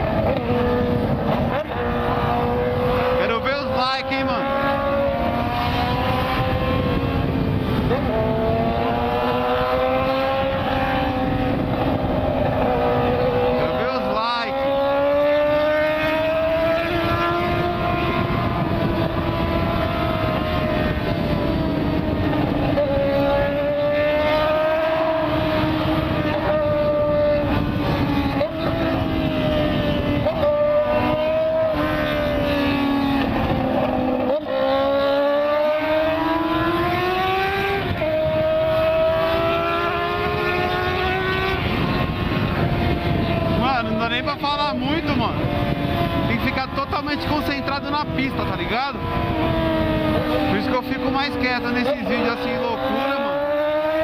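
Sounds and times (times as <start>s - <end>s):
motorcycle engine at highway speed: 0.0s - 54.0s
wind noise: 0.0s - 54.0s.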